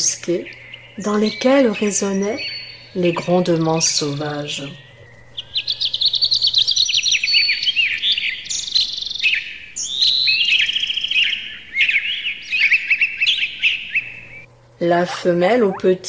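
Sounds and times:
songbirds chirping and trilling: 0.0 - 14.7.

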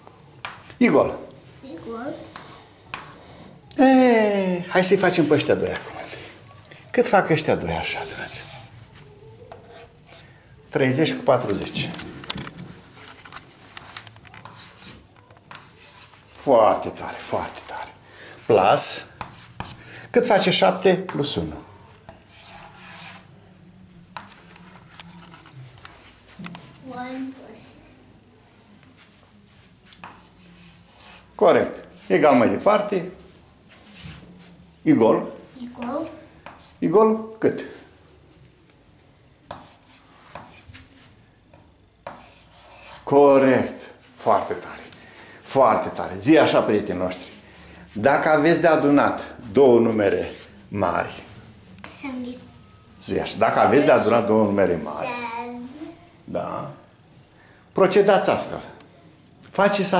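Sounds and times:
chalk scratching on blackboard: 7.8 - 10.3, 12.8 - 17.9, 18.8 - 19.8, 22.1 - 23.3, 29.0 - 34.6, 39.5 - 41.2, 42.0 - 44.9, 50.0 - 50.5.

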